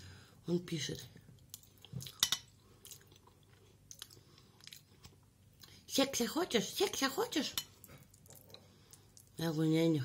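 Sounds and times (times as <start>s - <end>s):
chewing soft food: 1.4s - 5.8s, 7.8s - 9.4s.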